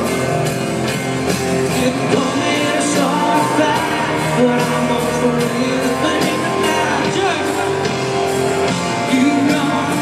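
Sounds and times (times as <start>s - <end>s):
country band playing: 0.0s - 10.0s.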